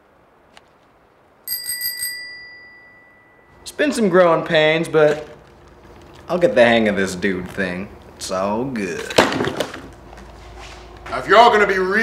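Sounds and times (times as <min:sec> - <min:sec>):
bicycle bell ringing: 0:01.4 - 0:03.6.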